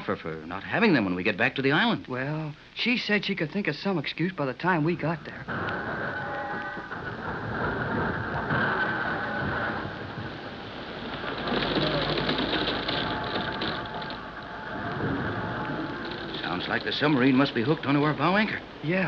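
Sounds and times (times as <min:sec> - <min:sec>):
rushing sea water: 0:05.5 - 0:18.9.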